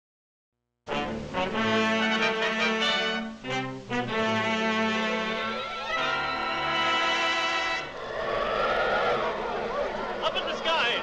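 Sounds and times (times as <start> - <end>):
brass orchestral fanfare: 0.9 - 7.9.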